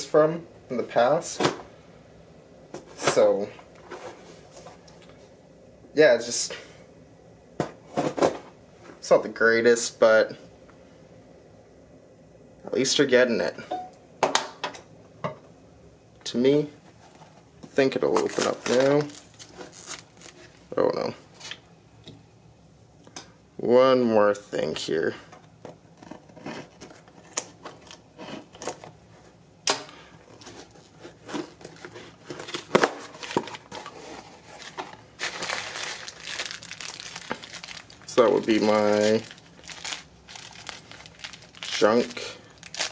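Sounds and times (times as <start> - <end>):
cardboard and paper crinkling: 16.9 - 20.8, 30.3 - 42.9
tape tearing: 18.2 - 20.6, 34.6 - 42.9.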